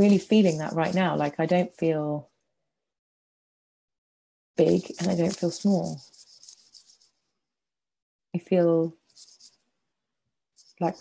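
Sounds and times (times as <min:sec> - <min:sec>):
scratchy rubbing on microphone: 0:00.0 - 0:01.7, 0:04.6 - 0:07.2, 0:09.0 - 0:09.7, 0:10.6 - 0:11.0.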